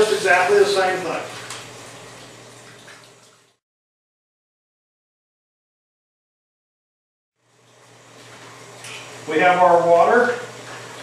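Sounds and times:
water running into a sink: 0.0s - 3.6s, 7.5s - 11.0s.

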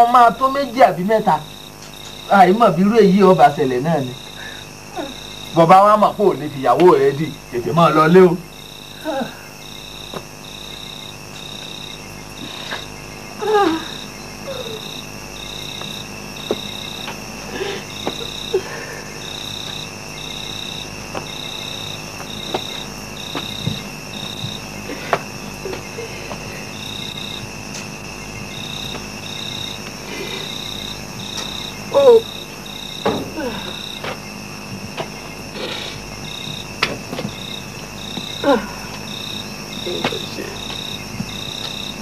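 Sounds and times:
cricket trilling: 0.0s - 42.0s.

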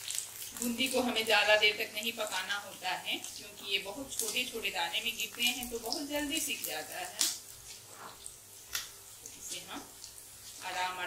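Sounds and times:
food sizzling in oil: 0.0s - 11.0s.

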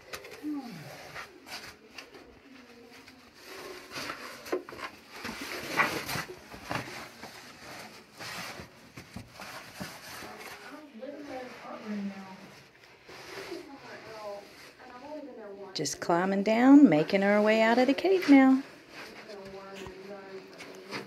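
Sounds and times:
low voices: 0.1s - 3.9s.

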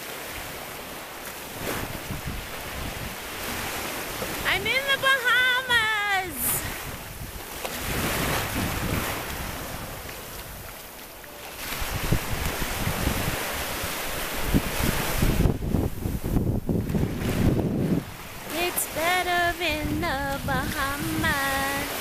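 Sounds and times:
small waves washing onto sand: 0.0s - 22.0s
wind buffeting microphone: 0.3s - 22.0s.

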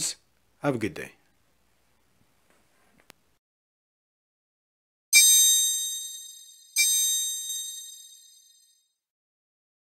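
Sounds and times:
bell-like ding: 5.2s - 9.0s.

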